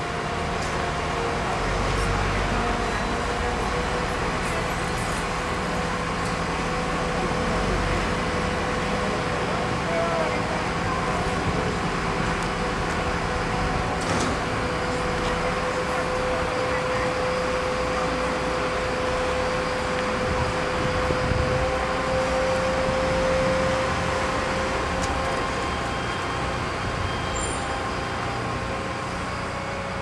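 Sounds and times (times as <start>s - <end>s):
crane engine and hydraulics: 0.0s - 30.0s
steady whine: 6.1s - 30.0s.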